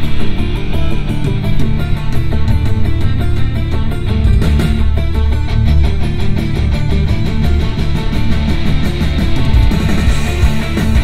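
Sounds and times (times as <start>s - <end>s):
rock music through car speakers: 0.0s - 11.0s.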